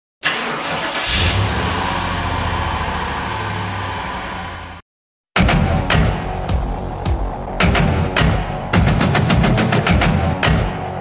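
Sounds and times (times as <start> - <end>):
engine starting and humming: 0.2 - 4.8.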